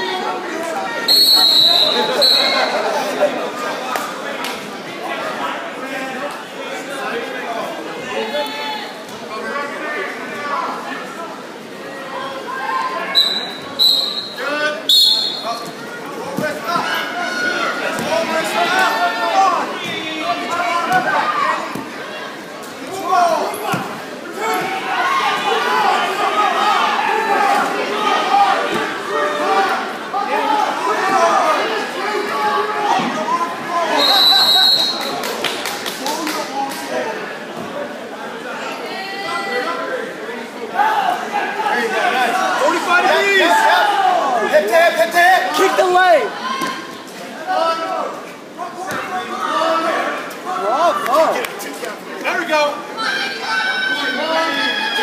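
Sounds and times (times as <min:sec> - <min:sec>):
hall full of chatter: 0:00.0 - 0:55.0
referee's whistle blasts: 0:01.1 - 0:02.8, 0:13.1 - 0:15.6, 0:33.9 - 0:35.1
spectators shouting: 0:12.2 - 0:35.1.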